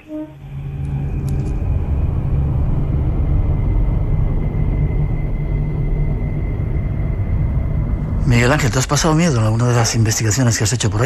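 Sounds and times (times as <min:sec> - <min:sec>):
faint high tone: 0:00.0 - 0:00.5
loud deep rumble: 0:00.0 - 0:10.0.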